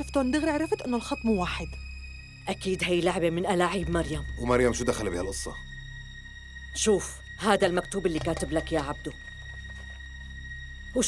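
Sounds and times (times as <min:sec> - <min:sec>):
drama score drone: 0:00.0 - 0:11.0.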